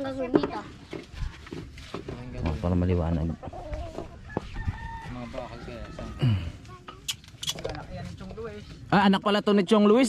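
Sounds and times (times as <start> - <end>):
rooster crowing: 4.2 - 6.4.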